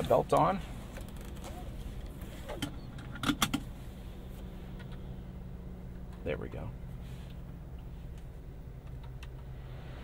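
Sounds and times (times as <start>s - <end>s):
truck engine idling: 0.0s - 10.0s.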